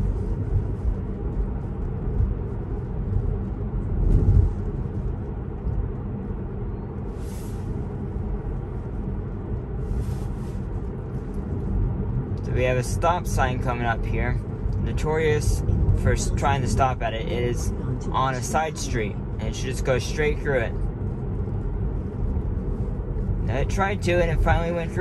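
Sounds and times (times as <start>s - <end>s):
road and tyre rumble: 0.0s - 25.0s.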